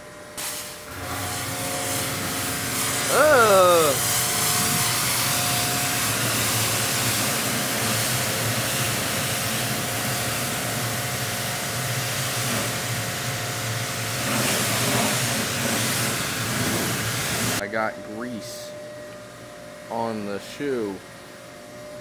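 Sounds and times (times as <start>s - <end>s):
pressure washer machine hum: 0.4s - 17.6s
water jet hissing: 0.4s - 17.6s.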